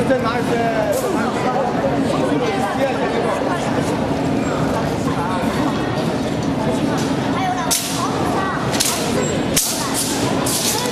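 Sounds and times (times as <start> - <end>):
crowd murmuring: 0.0 - 10.9.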